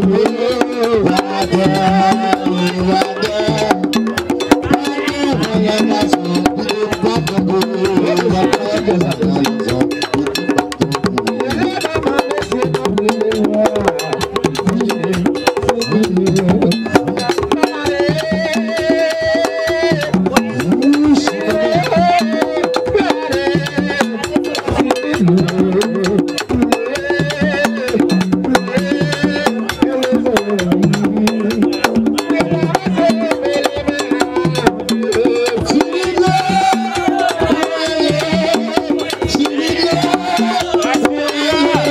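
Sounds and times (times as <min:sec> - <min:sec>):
rapid ceremonial drumming: 0:00.0 - 0:41.9
voices singing a chant: 0:00.0 - 0:41.9.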